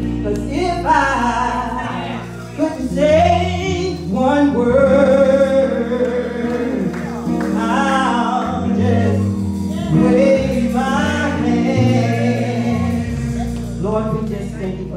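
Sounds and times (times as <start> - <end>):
instrumental chords: 0.0 - 14.9
woman singing gospel: 0.2 - 14.9
voices singing along: 0.5 - 14.6.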